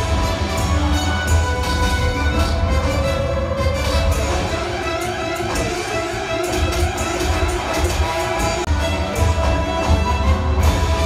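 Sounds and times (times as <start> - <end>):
orchestral music with pulsing beat: 0.0 - 11.0.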